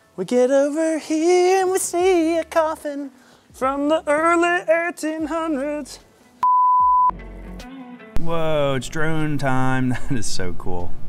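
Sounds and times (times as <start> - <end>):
faint background music: 0.0 - 6.5, 7.1 - 11.0
censor bleep: 6.4 - 7.1.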